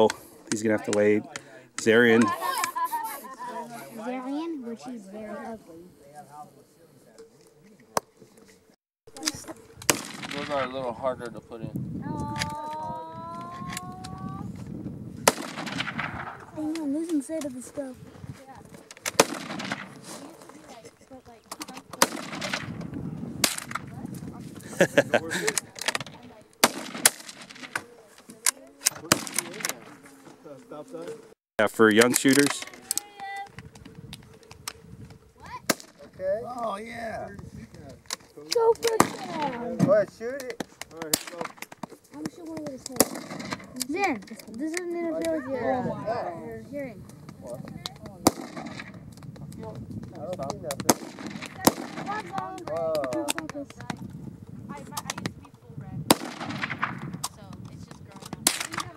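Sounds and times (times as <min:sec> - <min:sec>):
small arms gunshots: 0:09.8 - 0:10.8, 0:15.2 - 0:16.5, 0:19.0 - 0:20.0, 0:21.9 - 0:22.8, 0:25.8 - 0:27.8, 0:28.8 - 0:29.9, 0:38.8 - 0:39.6, 0:42.8 - 0:43.7, 0:48.2 - 0:49.0, 0:50.8 - 0:52.3, 0:56.1 - 0:57.3, 0:58.4 - 0:58.9
loud rifle shot: 0:09.9 - 0:10.7, 0:15.2 - 0:16.4, 0:19.1 - 0:19.9, 0:26.6 - 0:27.8, 0:29.0 - 0:29.7, 0:48.2 - 0:49.0, 0:50.9 - 0:52.2, 0:56.1 - 0:57.0
faint sharp cracks: 0:37.7 - 0:45.4.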